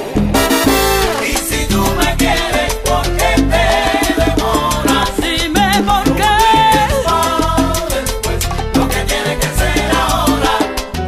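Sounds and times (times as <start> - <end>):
salsa dance music: 0.0 - 11.0.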